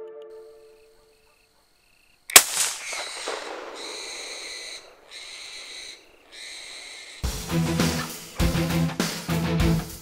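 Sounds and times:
rifle shot: 2.3s - 5.7s.

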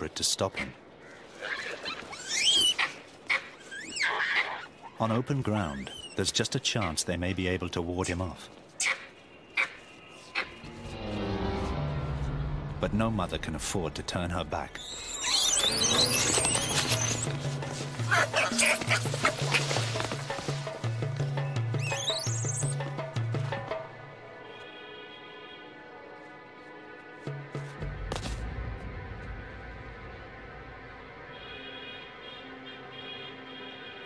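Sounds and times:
monkeys screaming: 1.3s - 7.0s, 14.8s - 17.3s, 18.0s - 20.0s, 21.8s - 22.8s.

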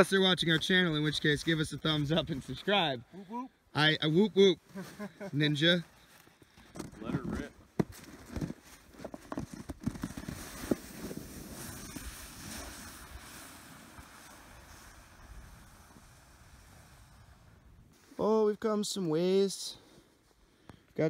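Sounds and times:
sled knocks and scrapes: 6.6s - 17.2s
sled hissing over snow: 10.3s - 18.2s.

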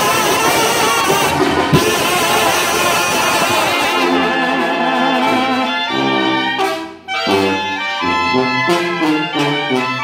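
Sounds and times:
drum strokes: 0.0s - 5.6s
brass band playing: 0.0s - 10.0s.

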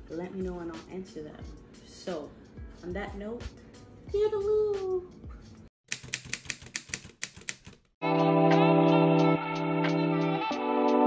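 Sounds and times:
rapid sharp clicks: 5.9s - 8.0s.

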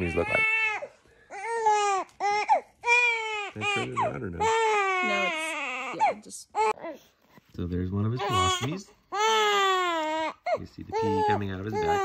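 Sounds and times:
baby crying: 0.0s - 7.0s, 8.2s - 12.0s.

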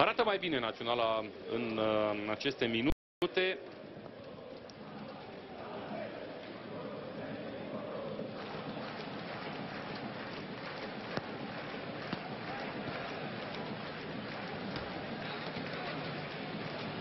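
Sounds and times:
stadium crowd noise: 0.0s - 17.0s.

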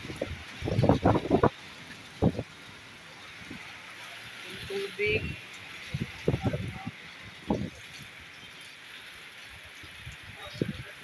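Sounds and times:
heavy rain: 0.0s - 11.0s
tyres hissing through water: 0.0s - 11.0s.

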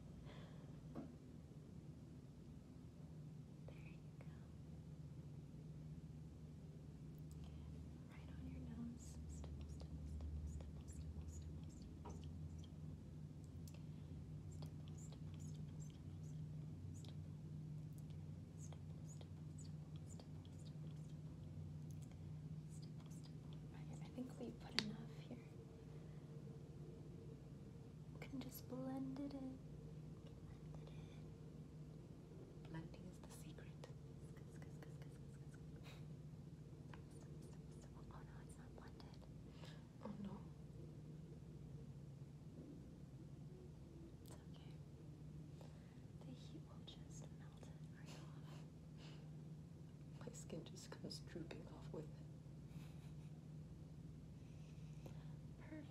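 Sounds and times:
low room hum: 0.0s - 55.9s.

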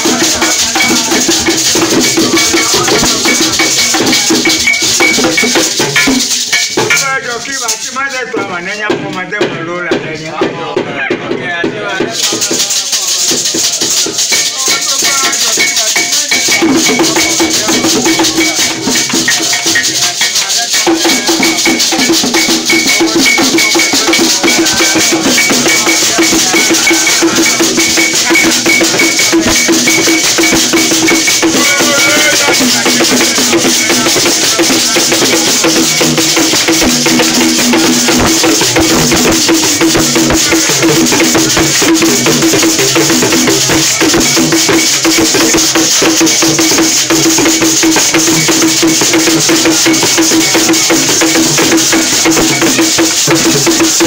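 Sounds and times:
voices: 0.0s - 54.0s
gourd rattles shaken: 6.2s - 8.4s
hand clapping: 12.2s - 39.0s.

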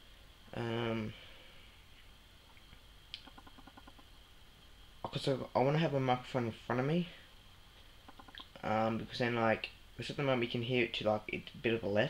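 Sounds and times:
steady high-pitched whine: 0.0s - 12.0s
faint rapid ticks: 2.5s - 4.1s, 8.1s - 8.6s.

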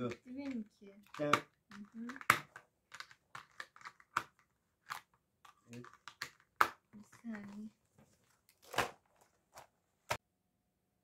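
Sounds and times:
plastic markers clicking into case: 0.2s - 7.6s.

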